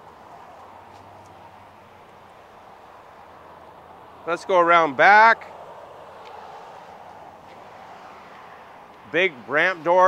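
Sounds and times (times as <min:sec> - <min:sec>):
footsteps on pavement: 0:00.0 - 0:04.0, 0:05.6 - 0:09.5
outdoor background noise: 0:00.0 - 0:10.0.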